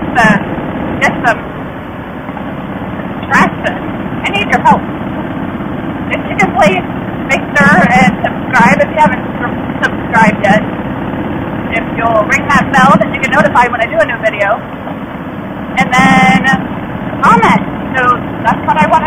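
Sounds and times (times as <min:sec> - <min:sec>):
woman speaking: 0:00.0 - 0:00.4, 0:01.0 - 0:01.4, 0:03.2 - 0:04.8, 0:06.1 - 0:10.7, 0:11.7 - 0:14.6, 0:15.7 - 0:16.6, 0:17.2 - 0:19.0
motorcycle engine running: 0:00.0 - 0:19.0.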